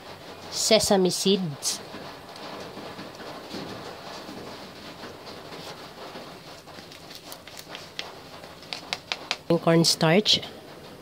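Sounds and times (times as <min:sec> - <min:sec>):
plastic cup tapping on spatula: 0:08.6 - 0:09.5.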